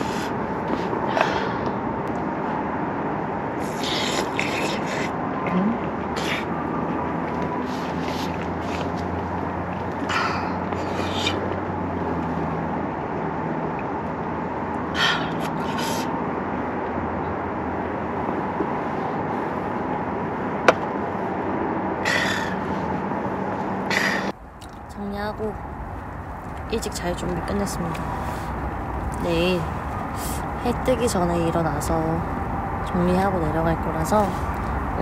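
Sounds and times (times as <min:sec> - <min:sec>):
steady rushing noise: 0:00.0 - 0:35.0.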